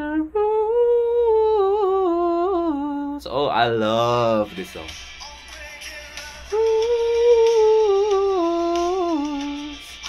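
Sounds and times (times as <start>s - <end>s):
man humming: 0.0s - 3.2s, 6.3s - 9.8s.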